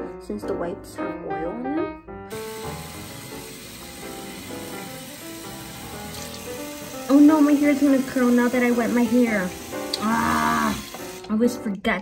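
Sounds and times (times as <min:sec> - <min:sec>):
background music: 0:00.0 - 0:12.0
tap water running: 0:02.3 - 0:11.5.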